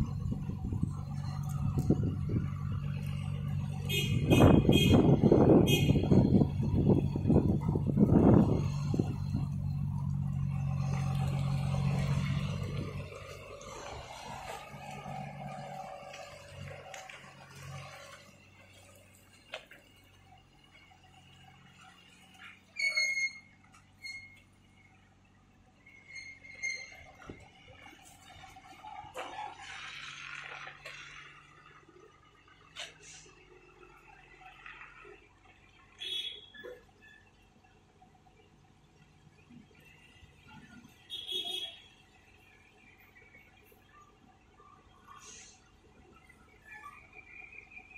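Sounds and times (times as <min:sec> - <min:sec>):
truck diesel engine: 0:00.0 - 0:47.9.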